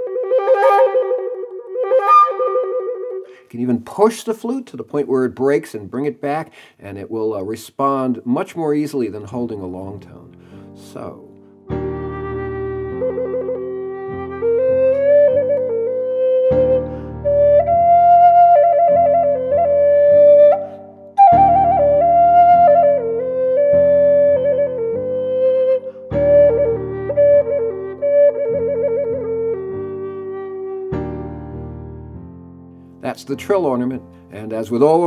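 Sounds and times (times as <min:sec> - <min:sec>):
flute playing slow melody: 0:00.0 - 0:03.4, 0:11.0 - 0:31.8.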